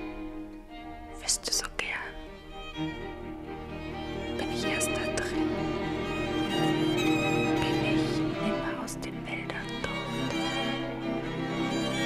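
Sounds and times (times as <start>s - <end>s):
slow violin music: 0.0s - 12.0s.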